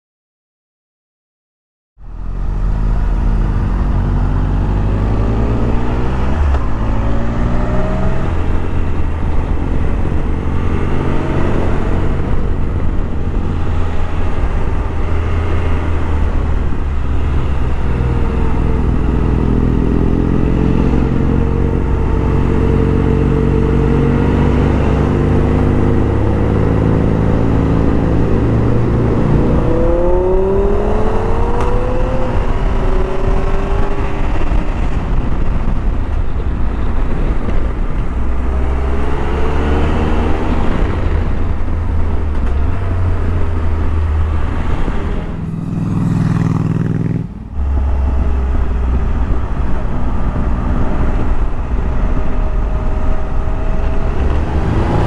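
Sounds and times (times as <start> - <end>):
wind noise: 2.0 - 55.0
motorcycle engine revving: 2.2 - 35.8, 38.6 - 55.0.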